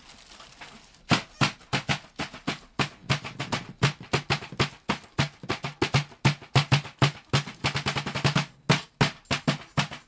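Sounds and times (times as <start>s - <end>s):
hands slapping a drum: 1.1s - 10.0s.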